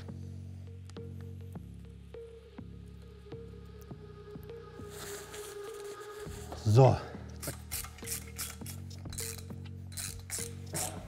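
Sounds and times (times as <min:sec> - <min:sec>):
hand ratchet clicking: 0:07.3 - 0:11.0.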